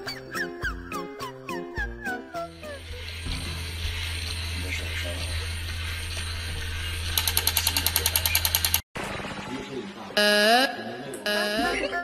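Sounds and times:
electrical hum: 2.4s - 8.8s
rapid stuttering rattle: 3.0s - 9.7s.

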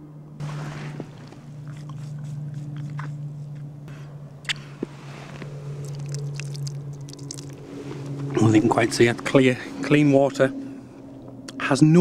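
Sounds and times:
low hum: 0.0s - 12.0s
wet sucking through a straw: 0.4s - 3.6s.

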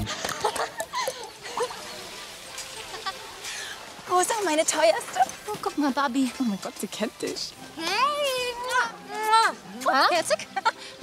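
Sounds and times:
music: 6.2s - 11.0s.

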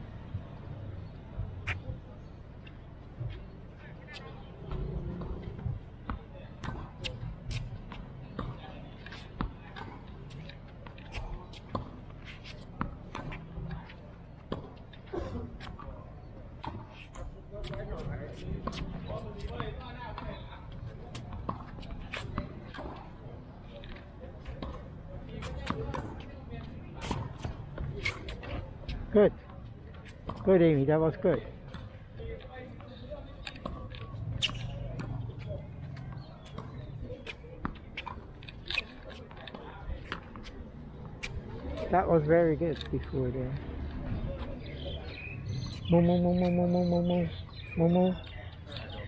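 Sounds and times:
tennis balls bouncing on hard court: 4.6s - 13.7s, 32.8s - 41.9s.

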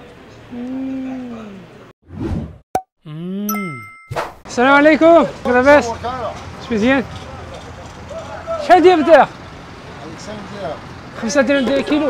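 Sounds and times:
bright ding: 3.5s - 4.2s
short swish: 4.1s - 4.4s.

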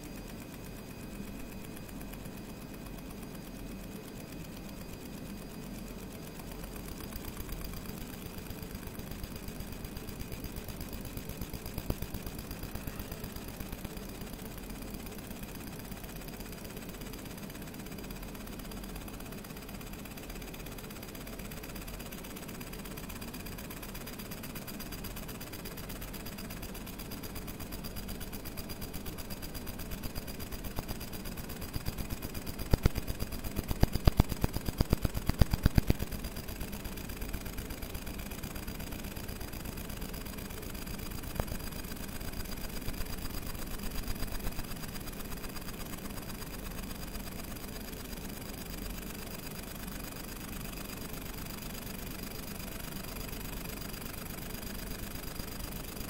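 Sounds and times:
faint high whine: 0.0s - 45.2s
laser ticking and crackling on metal: 0.0s - 56.0s
machine hum: 26.8s - 45.7s.

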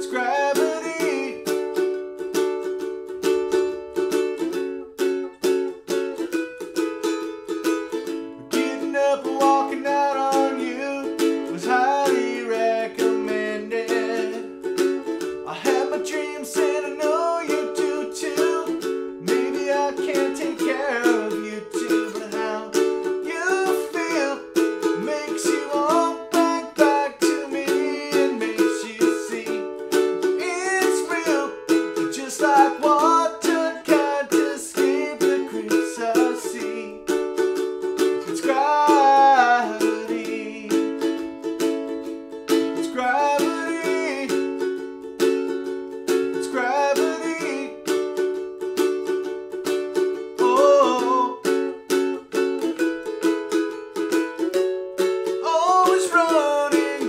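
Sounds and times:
man singing: 0.0s - 1.8s, 8.3s - 37.2s, 38.0s - 41.3s, 42.5s - 44.8s, 46.2s - 48.1s, 50.2s - 52.1s, 55.4s - 57.0s
ukulele strumming: 0.0s - 57.0s.

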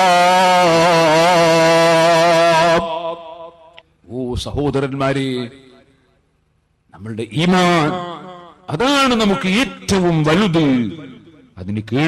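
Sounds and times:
man chanting a long note: 0.0s - 3.7s.

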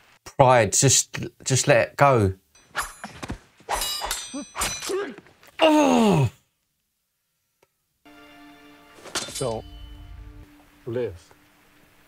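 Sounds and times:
sword blades clashing: 2.6s - 5.2s.

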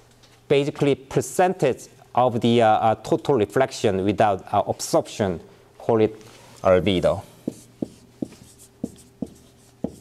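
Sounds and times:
faint marker scratching: 7.4s - 10.0s.

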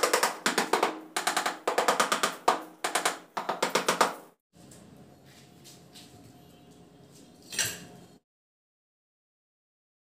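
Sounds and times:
sharp knocks on ceramic tile: 0.0s - 4.3s.

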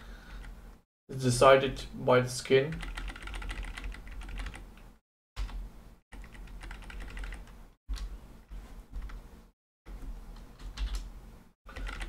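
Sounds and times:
computer keyboard typing: 2.7s - 4.6s, 6.2s - 8.1s, 10.6s - 11.1s, 11.7s - 12.0s.

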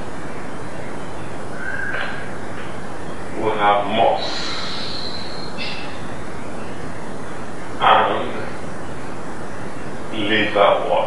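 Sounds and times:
steady background hiss: 0.0s - 11.0s
man speaking: 3.4s - 4.5s, 7.8s - 8.6s, 10.1s - 11.0s.

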